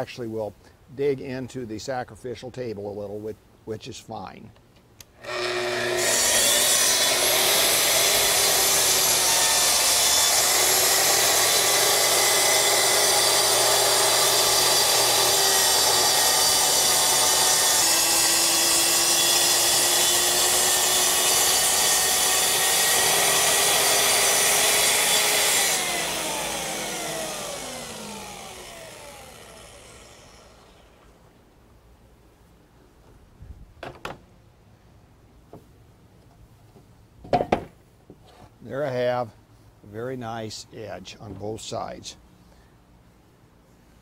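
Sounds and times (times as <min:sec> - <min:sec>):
circular saw cutting plywood: 0:05.2 - 0:31.2
saw winding down whine: 0:05.2 - 0:31.2.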